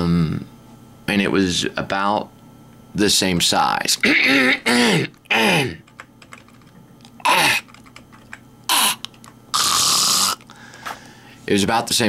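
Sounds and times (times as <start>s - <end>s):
man coughing: 4.0s - 5.8s, 7.2s - 7.6s.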